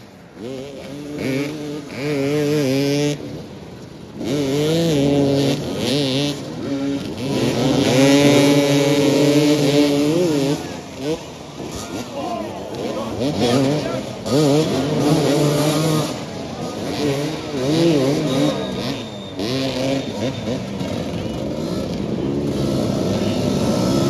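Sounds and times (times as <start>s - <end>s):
dirt bike engines revving: 0.0s - 24.0s.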